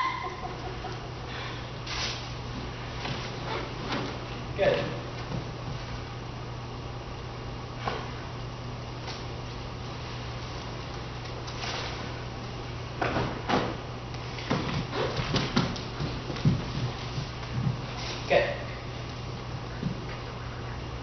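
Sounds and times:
low room hum: 0:00.0 - 0:21.0
thuds and scuffs on floor: 0:13.0 - 0:18.3.

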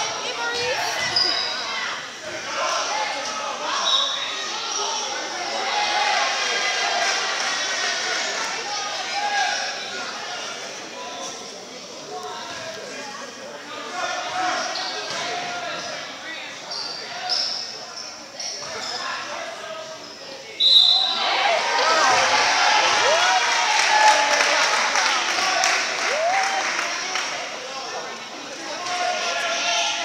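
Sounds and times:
crowd shouting and cheering: 0:00.0 - 0:11.0, 0:20.8 - 0:30.0
spectators talking: 0:00.0 - 0:30.0
sneaker squeaks: 0:00.5 - 0:01.8, 0:14.4 - 0:15.9, 0:16.6 - 0:19.2.

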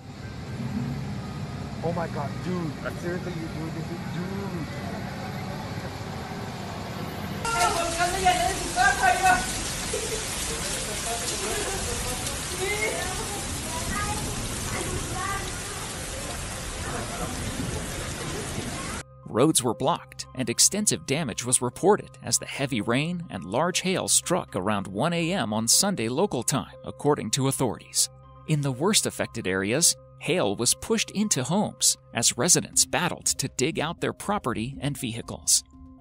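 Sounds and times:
truck engine rumbling: 0:00.0 - 0:12.5
faint voices: 0:07.5 - 0:19.0
heavy rain and hail: 0:07.5 - 0:19.0.

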